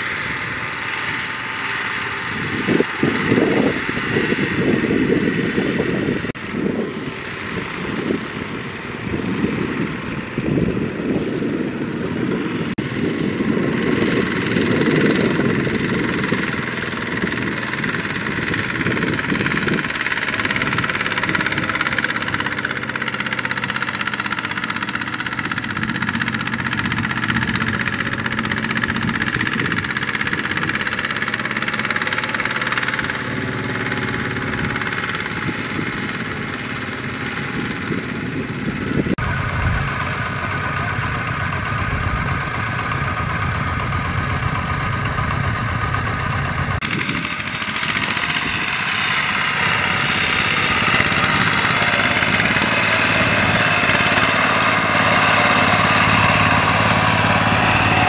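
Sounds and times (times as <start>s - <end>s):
diesel tractor engine under load: 0.0s - 58.0s
different engine running: 0.0s - 58.0s.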